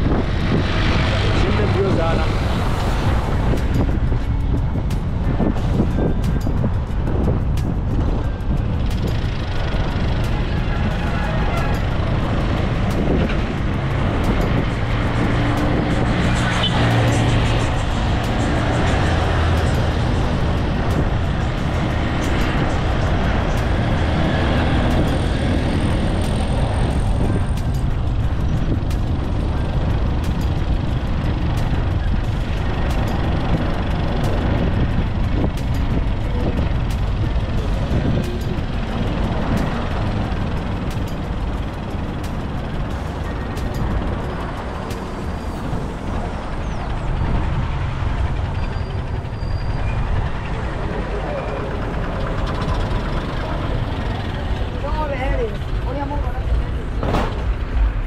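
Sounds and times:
engine rumble: 0:00.0 - 0:58.0
vehicles driving past: 0:00.0 - 0:58.0.

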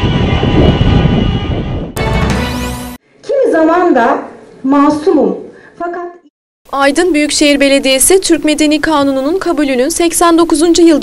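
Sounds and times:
car horns blaring: 0:00.0 - 0:02.4.

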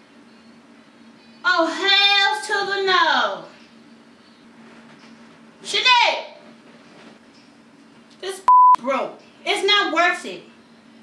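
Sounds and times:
censor bleep: 0:08.5 - 0:08.8.

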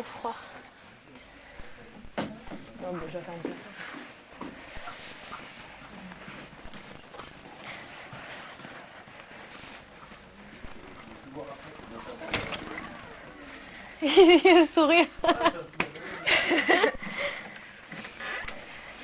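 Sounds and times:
room noise: 0:00.0 - 0:19.0
faint indistinct voices: 0:07.4 - 0:19.0.

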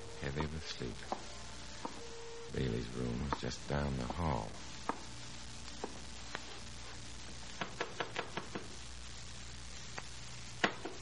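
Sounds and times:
low recording hum: 0:00.0 - 0:11.0.

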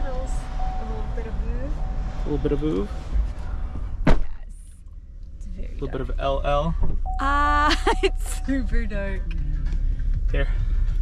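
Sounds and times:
car door slamming: 0:03.6 - 0:04.4.

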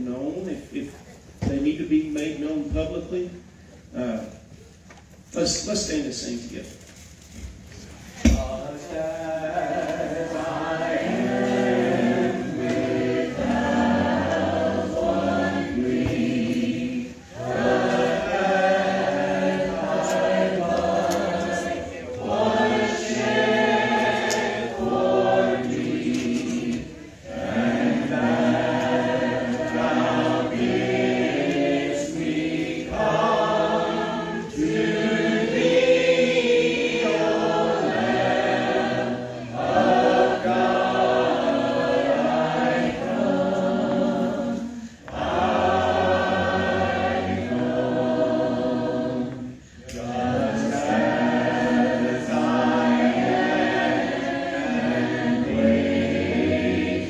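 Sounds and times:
congregation singing a hymn: 0:07.4 - 0:57.0.

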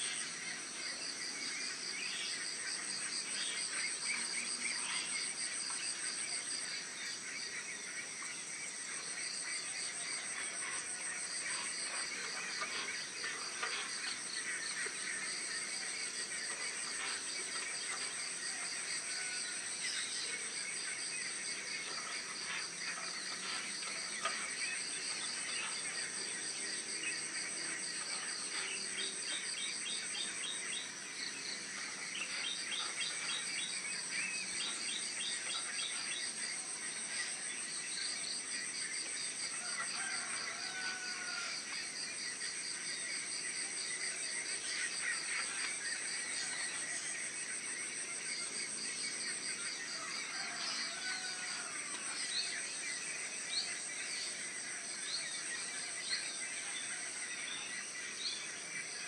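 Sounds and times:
insects chorus pulsing: 0:00.0 - 0:59.0.

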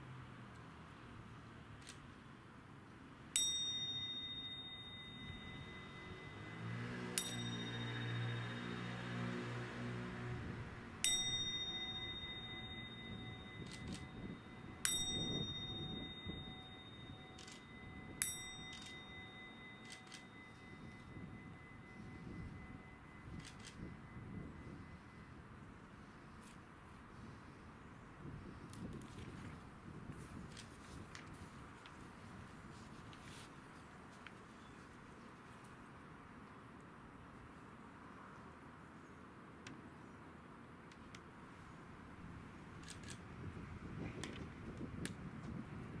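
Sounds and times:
metal bowl bell ringing: 0:03.4 - 0:09.9, 0:10.8 - 0:25.2.

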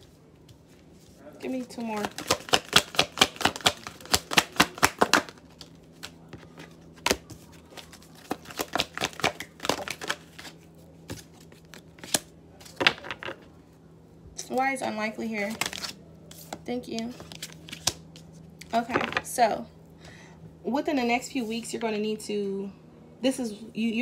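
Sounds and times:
cards being shuffled by hand: 0:00.0 - 0:13.5, 0:15.4 - 0:19.2.

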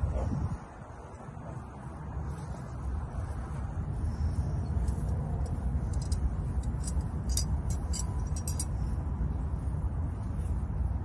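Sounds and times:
low background rumble: 0:00.0 - 0:11.0
light metallic clinks: 0:04.3 - 0:09.2.

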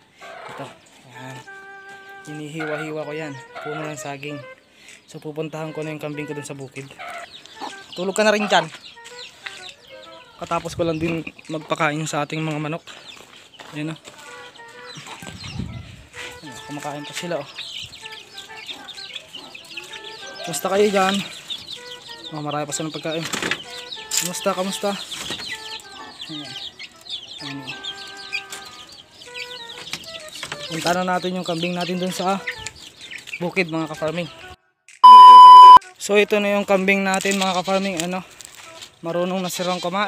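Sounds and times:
chicks peeping: 0:00.0 - 0:35.8, 0:36.4 - 0:40.0.

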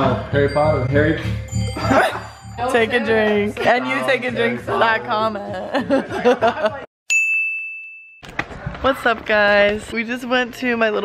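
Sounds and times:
bell chime ding: 0:00.4 - 0:03.4, 0:07.1 - 0:08.2.

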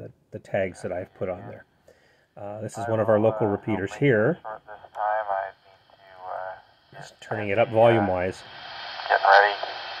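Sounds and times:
person speaking over radio speaker: 0:02.7 - 0:08.4, 0:09.0 - 0:09.8.

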